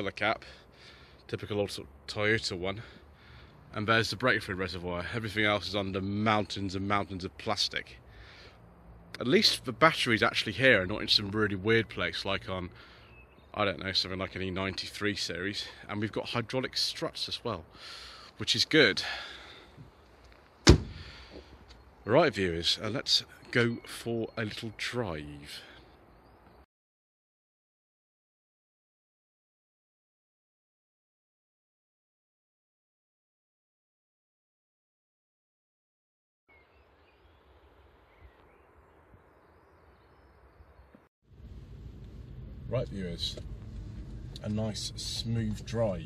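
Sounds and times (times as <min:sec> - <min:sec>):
car bonnet slamming shut: 0:20.6 - 0:21.1
low outdoor rumble: 0:41.3 - 0:46.0.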